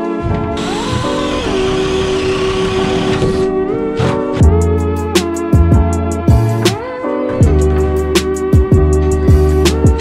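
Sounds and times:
power drill running: 0.6s - 3.5s.

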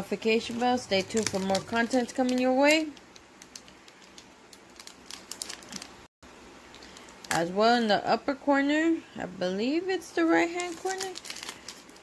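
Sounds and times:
foil wrapper crinkling and tearing: 0.4s - 6.1s, 10.4s - 12.0s.

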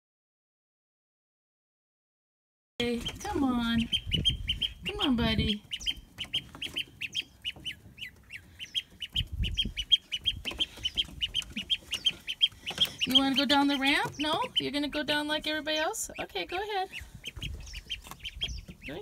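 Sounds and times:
duckling peeping: 2.8s - 19.0s.

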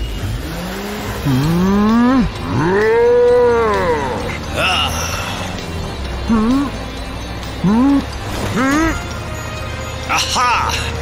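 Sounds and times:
cartoon bull mooing: 1.2s - 4.8s.

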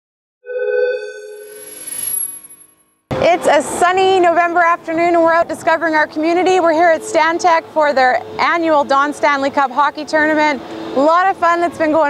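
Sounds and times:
bell-like synthesized tone: 0.4s - 3.0s
shimmering swell with high whine: 0.5s - 2.9s.

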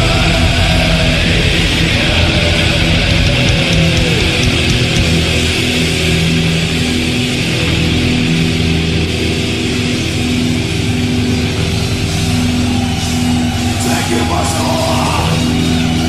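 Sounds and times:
distorted electric guitars: 0.0s - 16.0s
drums and cymbals: 0.0s - 16.0s.

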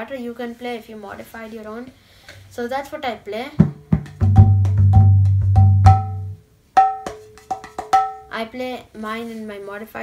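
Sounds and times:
hand drum strokes: 3.6s - 8.2s.

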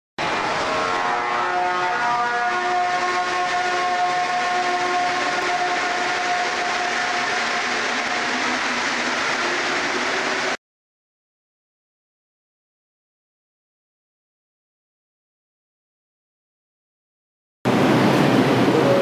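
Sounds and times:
train rushing noise: 0.2s - 10.6s, 17.7s - 19.0s.

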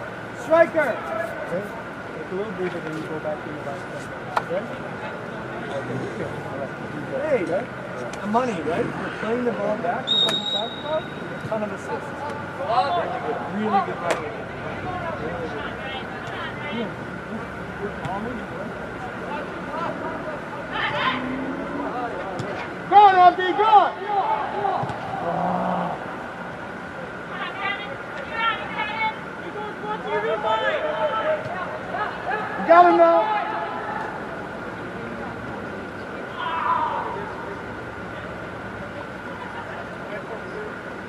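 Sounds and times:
short high whistle: 10.1s - 11.1s
players shouting: 19.1s - 34.6s, 36.2s - 37.6s.

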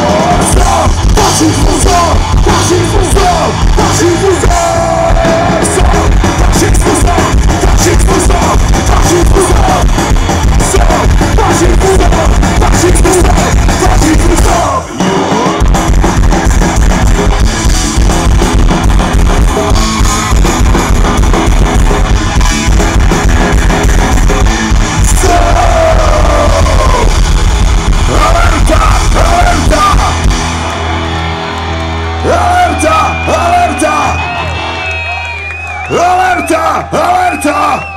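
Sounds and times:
crowd shouting: 0.0s - 9.8s, 25.0s - 27.4s, 28.0s - 37.9s
singer yelling: 0.0s - 15.6s, 24.9s - 27.3s, 28.0s - 30.2s, 32.2s - 37.9s
punk rock band playing live: 0.0s - 37.9s.

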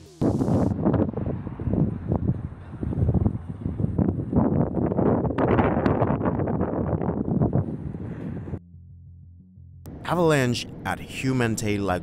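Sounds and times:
wind buffeting microphone: 0.2s - 8.6s.

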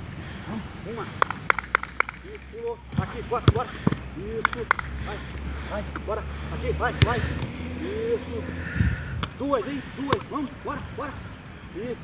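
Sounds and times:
coach shouting counts: 0.4s - 12.0s
sharp taps of feet: 3.5s - 5.0s.

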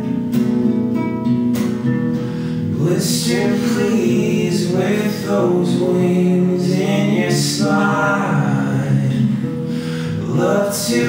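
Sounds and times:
acoustic guitar strumming: 0.0s - 11.0s
person singing: 2.8s - 11.0s.

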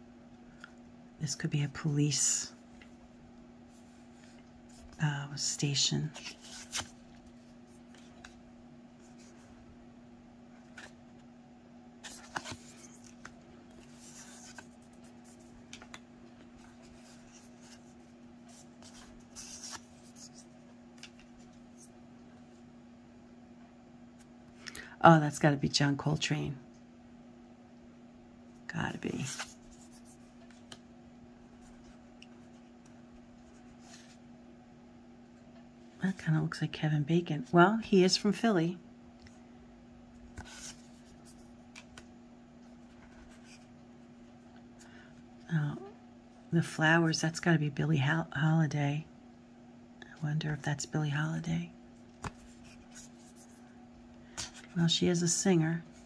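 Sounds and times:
faint steady hum: 0.0s - 56.0s
cards sliding and brushing: 6.2s - 8.4s, 12.0s - 21.9s, 29.1s - 30.8s, 31.6s - 34.2s, 40.3s - 42.0s, 52.2s - 53.6s.

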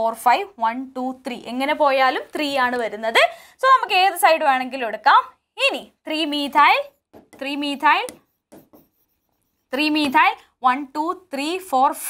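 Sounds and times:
stylus scratching on screen: 6.1s - 10.3s.

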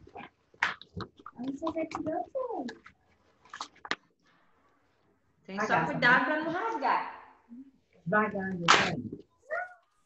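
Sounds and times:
child's voice: 9.4s - 9.8s.

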